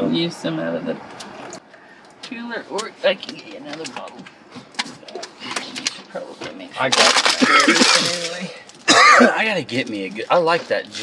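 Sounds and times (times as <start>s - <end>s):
bags rustling: 6.8s - 8.6s.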